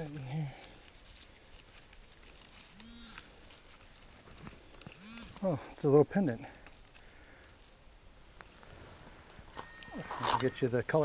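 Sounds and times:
rustling of soil and leaves: 0.0 - 11.0.

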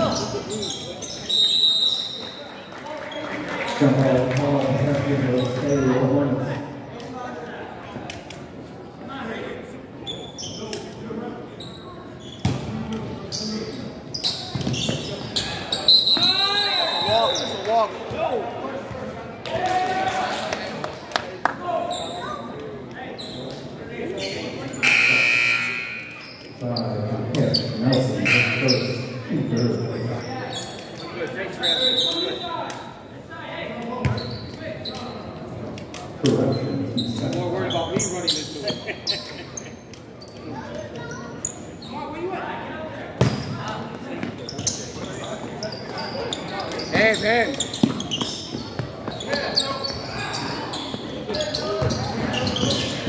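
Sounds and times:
sneakers squeaking: 0.0 - 2.4, 10.0 - 19.2, 21.8 - 32.6, 33.9 - 42.3, 43.2 - 53.0
people talking in gym: 0.0 - 53.0.

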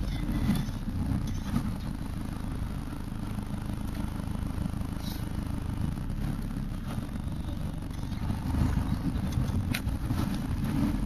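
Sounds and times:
engine running at low revs: 0.0 - 11.0.

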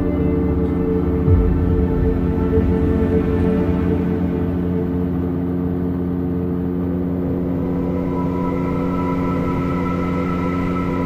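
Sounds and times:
aircraft engine and propeller drone: 0.0 - 11.0.

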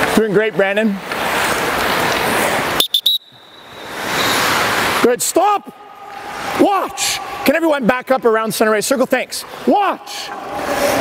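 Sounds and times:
skate blades scraping ice: 1.0 - 2.8, 3.6 - 5.0.

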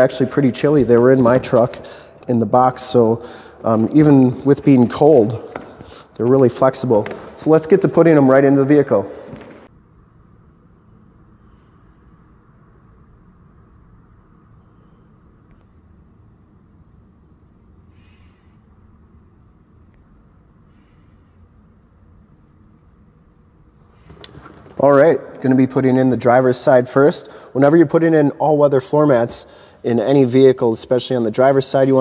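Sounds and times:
man's voice: 0.0 - 5.6
low room hum: 0.0 - 32.0.

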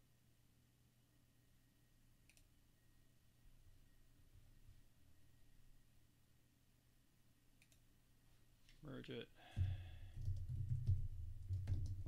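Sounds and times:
person speaking: 8.7 - 10.0
typing on computer keyboard: 10.2 - 12.0.

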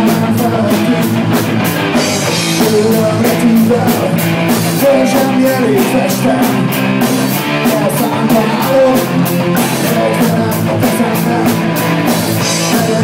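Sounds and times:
drum kit steady beat: 0.0 - 13.0
electric guitar: 0.0 - 13.0.

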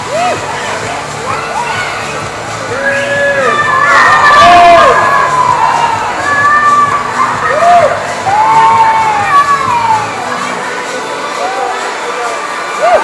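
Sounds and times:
crowd cheering and shouting: 0.0 - 13.0
long high shouts: 2.7 - 10.2.

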